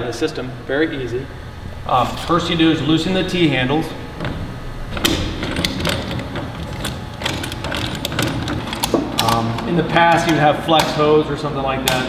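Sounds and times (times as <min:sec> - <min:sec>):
steady low hum: 0:00.0 - 0:12.0
t-handles clicking and rattling: 0:04.2 - 0:11.0.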